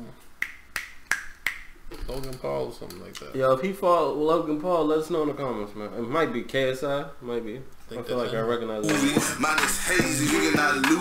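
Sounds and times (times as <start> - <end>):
fingers snapping: 0.4 - 1.7.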